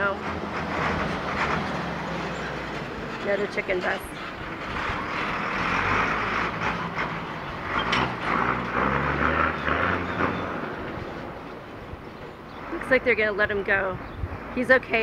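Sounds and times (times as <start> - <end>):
bus diesel engine passing: 0.0 - 15.0.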